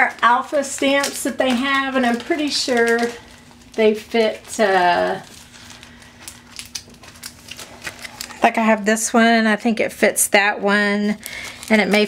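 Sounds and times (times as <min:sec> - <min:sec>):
plastic packaging clicks and crinkles: 0:00.0 - 0:08.8, 0:11.0 - 0:12.0
faint steady hum: 0:00.0 - 0:12.0.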